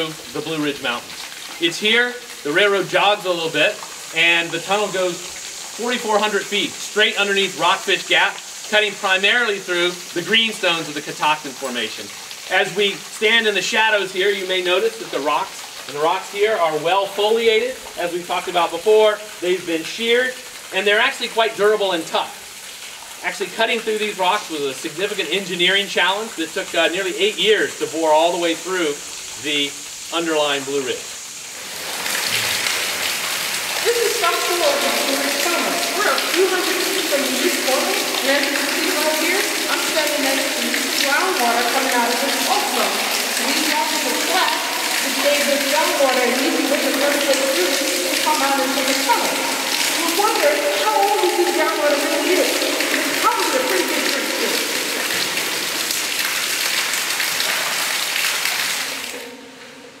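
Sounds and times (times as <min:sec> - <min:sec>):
water running down rock: 0:00.0 - 0:59.3
water splashing down rock: 0:31.6 - 0:59.2
woman speaking: 0:37.2 - 0:54.6.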